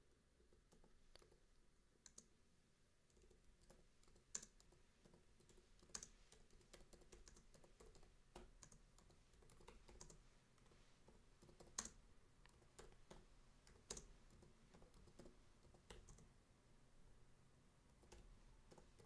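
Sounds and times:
faint keyboard typing: 0.1s - 2.4s, 3.0s - 16.4s, 17.8s - 19.0s.

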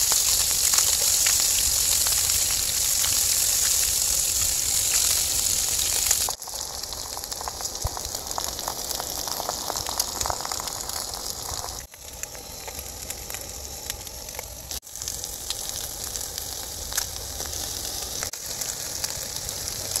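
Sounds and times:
eggs frying with pops: 0.0s - 20.0s
ham sizzling in a frying pan: 0.0s - 20.0s.

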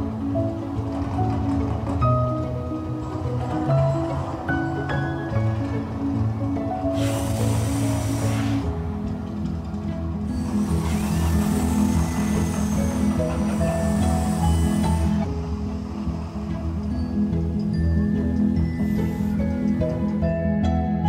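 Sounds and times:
music with steady pitched tones: 0.0s - 21.0s
gas flame jets hissing: 6.8s - 9.0s, 10.3s - 15.5s.

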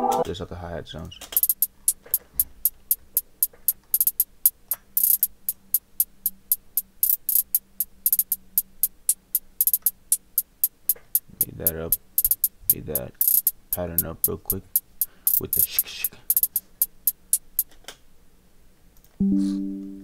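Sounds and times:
programmed hi-hat pattern: 1.4s - 17.7s.

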